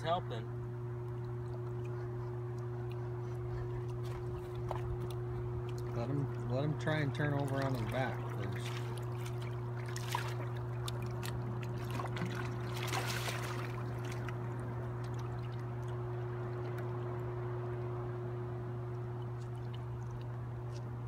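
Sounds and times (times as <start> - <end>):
steady low hum: 0.0 - 21.0
fish thrashing in water: 3.7 - 17.4
water splashes: 3.9 - 18.1, 18.8 - 21.0.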